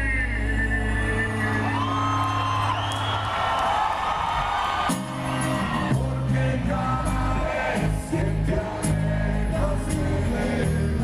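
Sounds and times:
bass riff: 4.8s - 11.0s
live rock band playing: 4.8s - 11.0s.

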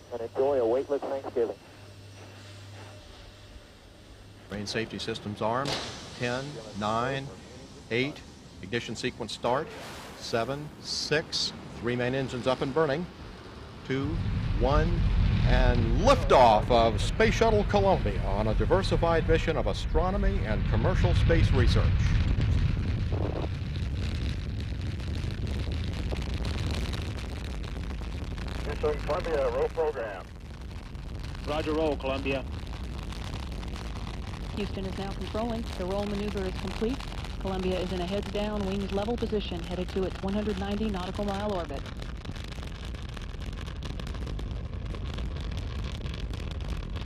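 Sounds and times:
rocket launch roar: 2.2s - 47.0s.

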